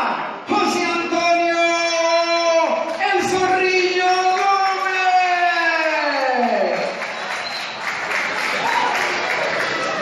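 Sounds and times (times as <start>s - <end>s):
crowd applauding and cheering: 4.0s - 10.0s.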